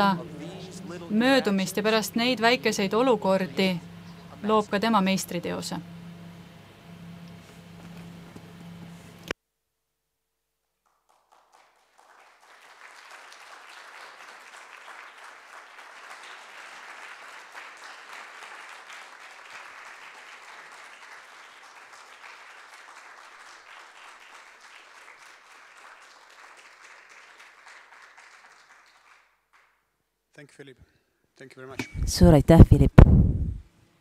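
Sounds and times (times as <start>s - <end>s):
audience applause: 10.9s - 29.8s.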